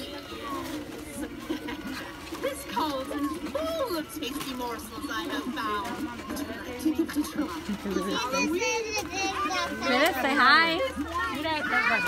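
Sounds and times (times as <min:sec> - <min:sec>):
children and adult talking: 0:00.0 - 0:12.0.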